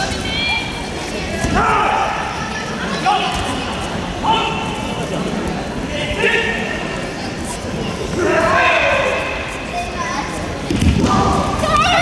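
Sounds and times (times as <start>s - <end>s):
people shouting: 1.4s - 2.4s.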